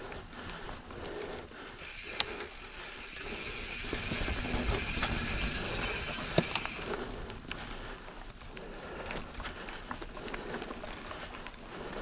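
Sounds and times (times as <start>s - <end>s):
bike tyres on dirt trail: 0.0s - 12.0s
sharp bike clicks: 1.8s - 7.1s.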